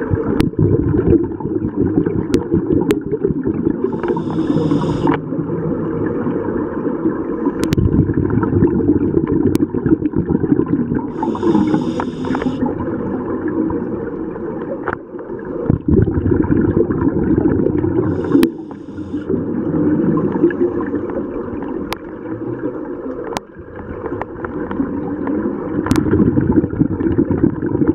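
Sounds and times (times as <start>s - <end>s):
diver's bubbles gurgling underwater: 0.0s - 27.9s
brief hiss: 3.9s - 5.2s, 11.2s - 12.6s, 18.1s - 19.3s
sharp clicks: 11.2s - 12.6s.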